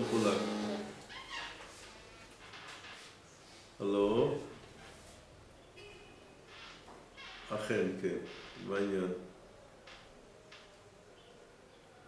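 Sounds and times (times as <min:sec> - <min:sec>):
faint vocal sound: 0:00.0 - 0:01.1.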